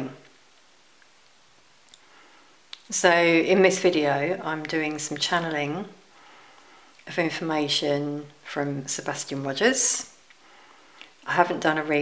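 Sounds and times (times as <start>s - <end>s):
woman speaking: 0.0s - 0.3s, 2.8s - 6.0s, 7.0s - 10.2s, 11.2s - 12.0s.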